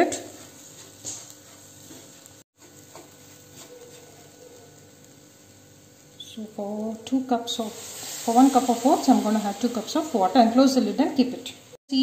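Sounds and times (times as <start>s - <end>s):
spatula stirring oats in pan: 0.1s - 6.1s.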